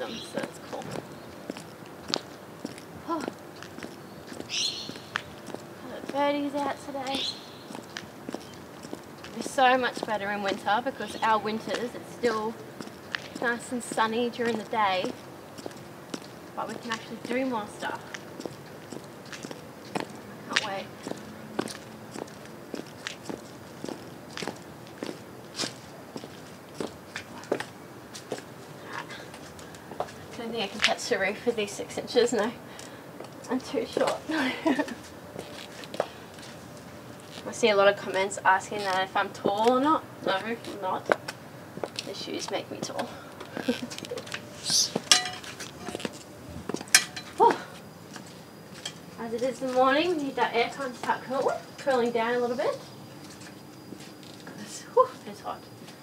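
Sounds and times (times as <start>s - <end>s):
high heels clicking on concrete: 0.4s - 28.5s, 38.8s - 52.1s
harsh high-pitched bird call: 4.5s - 5.1s, 7.1s - 7.6s, 44.6s - 45.1s.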